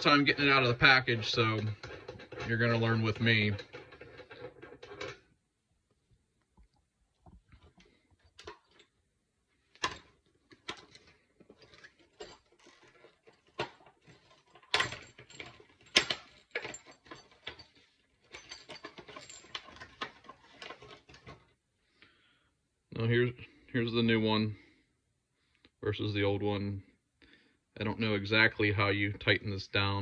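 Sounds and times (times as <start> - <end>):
hands handling metal parts: 0.0 - 5.3, 7.2 - 21.6.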